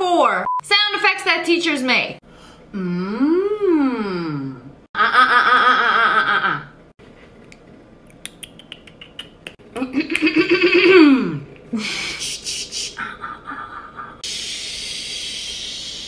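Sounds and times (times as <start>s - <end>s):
woman clicking her tongue: 8.1s - 9.6s
woman making buzzing mouth noise: 8.3s - 11.4s
woman making shushing hiss: 11.8s - 13.0s, 14.2s - 16.0s.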